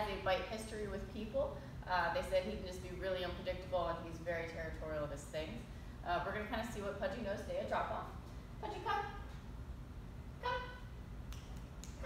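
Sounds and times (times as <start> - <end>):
low steady hum: 0.0 - 12.0
woman calling a dog: 10.4 - 10.9.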